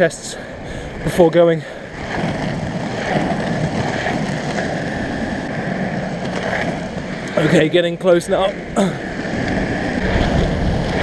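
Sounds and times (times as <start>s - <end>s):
skateboard wheels rolling on asphalt: 0.0s - 11.0s.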